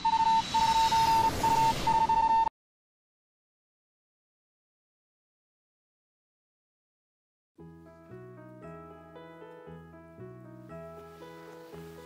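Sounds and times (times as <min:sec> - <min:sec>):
high electronic beeps: 0:00.0 - 0:02.5.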